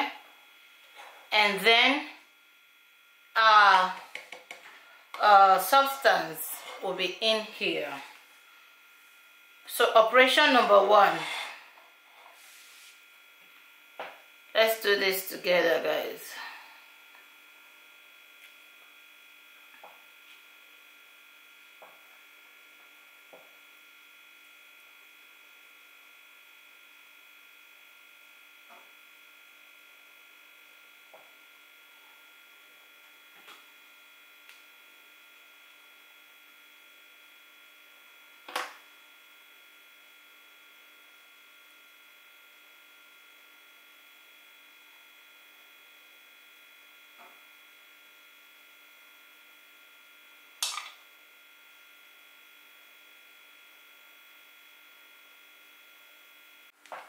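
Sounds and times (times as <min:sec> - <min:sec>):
faint electrical hum: 0:00.0 - 0:57.0.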